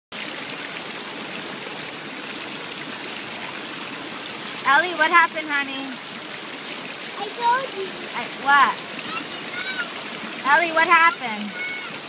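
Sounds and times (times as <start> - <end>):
running water rushing: 0.1 - 12.0.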